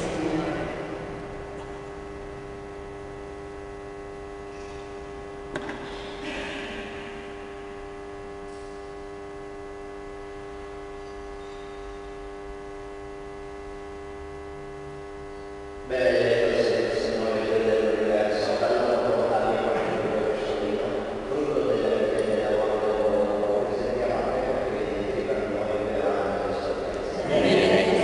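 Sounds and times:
electrical mains hum: 0.0 - 28.0.

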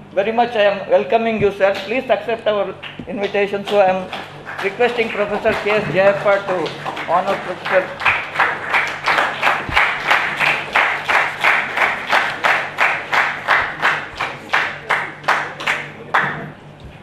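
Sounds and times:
audience applause: 3.2 - 16.6.

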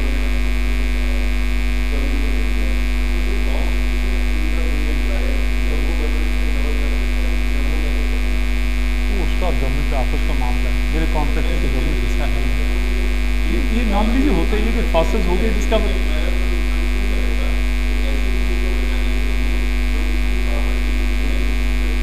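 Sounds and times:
faint indistinct voices: 0.0 - 22.0
loud electrical mains hum: 0.0 - 22.0.

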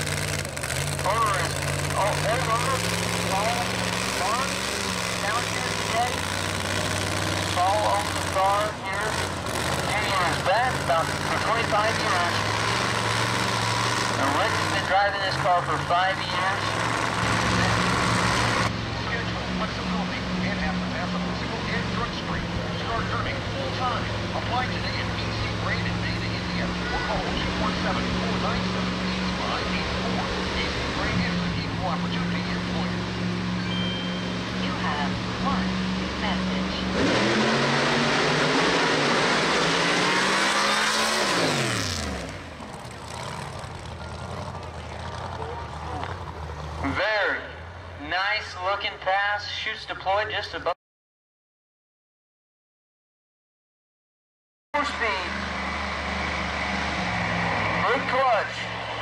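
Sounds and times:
drag racing engine idling: 0.0 - 37.0, 42.4 - 48.0.

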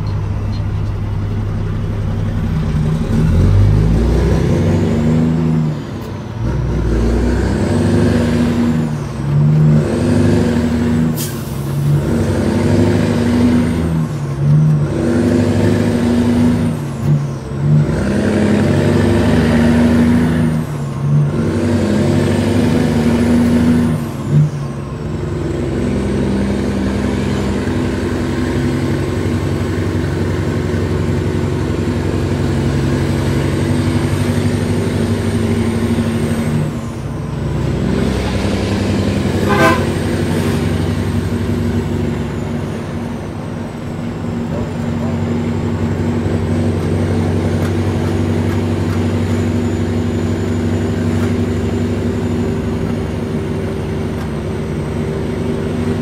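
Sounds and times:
truck diesel engine revving: 0.0 - 56.0.

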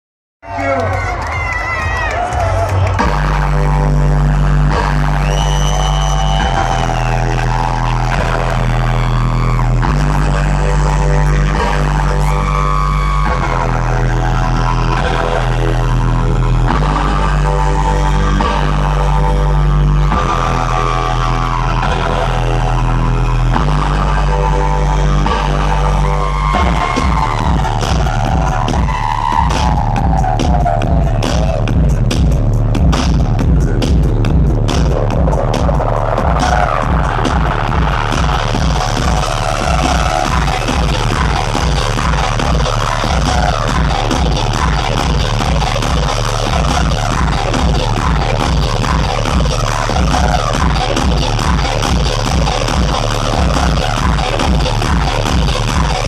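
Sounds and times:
loud electronic bass music: 0.4 - 56.0
fast pulsing beat: 2.8 - 56.0.

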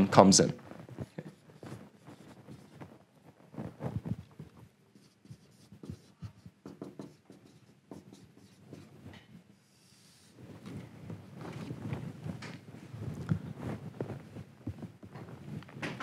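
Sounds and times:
handling and shuffling noise: 0.0 - 6.6, 8.5 - 16.0
marker pen writing on whiteboard: 0.0 - 10.8.

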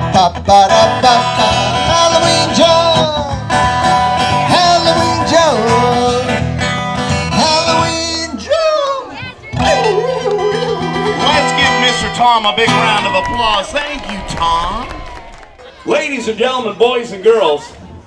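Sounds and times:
strummed guitar: 0.0 - 13.8
voices singing: 7.4 - 14.0.

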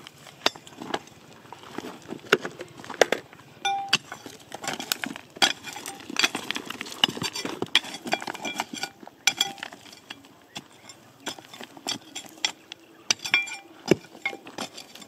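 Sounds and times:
stones scraping and rattling: 0.0 - 15.0
metal blade striking rocks: 3.6 - 15.0.

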